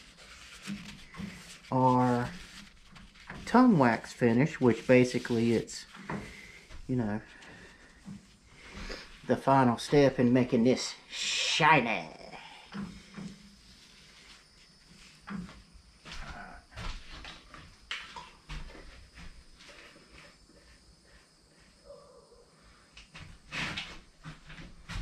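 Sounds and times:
objects clunking and scraping: 0.0s - 9.3s, 12.6s - 20.4s, 23.1s - 25.0s.

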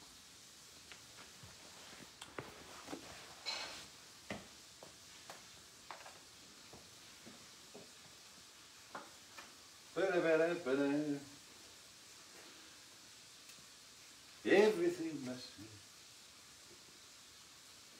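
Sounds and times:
man speaking: 14.5s - 15.8s.

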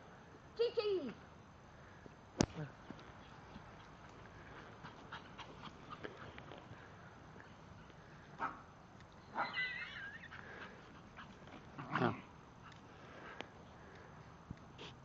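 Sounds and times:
dog whining: 9.3s - 10.4s
small dog yelping: 9.3s - 10.4s.

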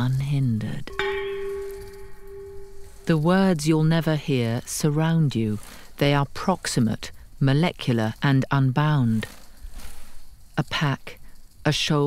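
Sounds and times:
chime ringing bell-like tone: 0.9s - 3.2s.

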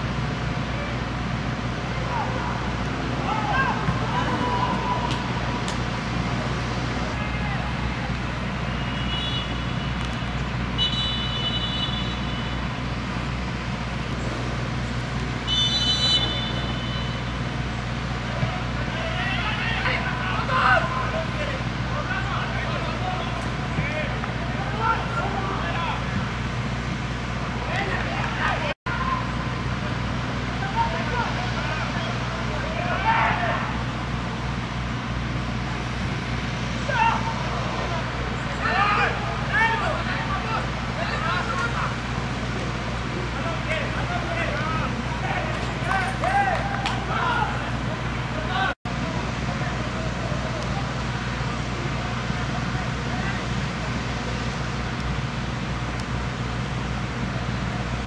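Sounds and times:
low stadium rumble: 0.0s - 58.0s
players shouting: 0.4s - 12.9s, 14.7s - 54.3s
referee whistle blast: 10.8s - 12.6s, 15.5s - 17.3s.

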